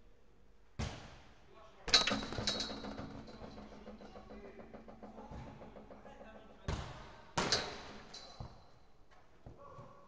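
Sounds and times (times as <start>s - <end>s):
football struck hard with echo: 1.9s - 8.6s.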